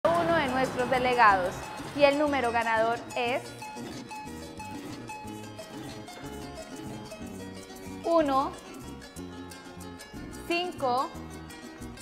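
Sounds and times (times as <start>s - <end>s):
background music with bass line: 0.1s - 12.0s.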